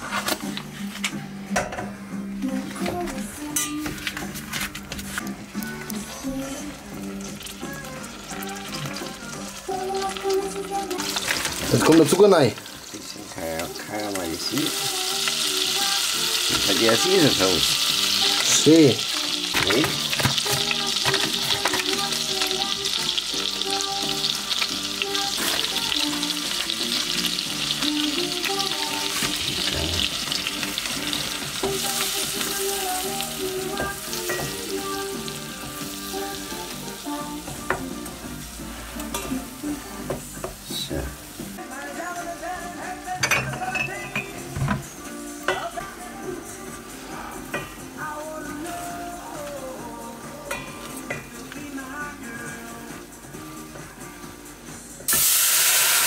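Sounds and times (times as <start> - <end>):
background music: 0.0 - 56.0
fat and sugar sizzling in saucepan: 4.3 - 54.4, 55.0 - 56.0.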